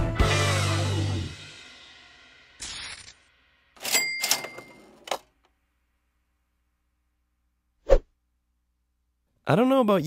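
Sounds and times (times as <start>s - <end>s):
cash register ka-ching: 3.8s - 5.2s.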